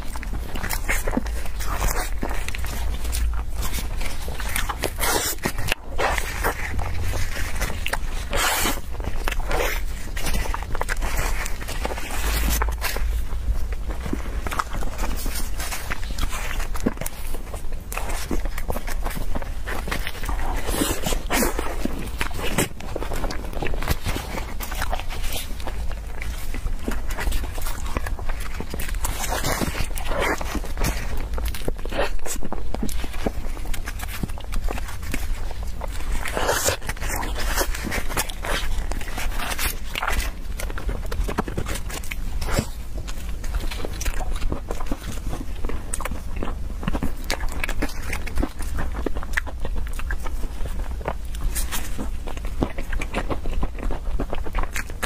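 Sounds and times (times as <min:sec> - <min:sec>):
chewing and lip-smacking: 0:00.0 - 0:55.0.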